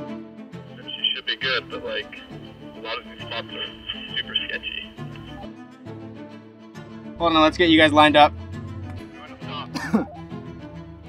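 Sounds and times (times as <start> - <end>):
music with sustained strings: 1.5 - 11.0
person clearing throat: 9.7 - 10.2.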